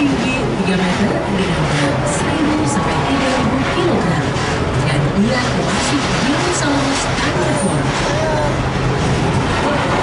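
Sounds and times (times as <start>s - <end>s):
ride car running on rail: 0.0s - 10.0s.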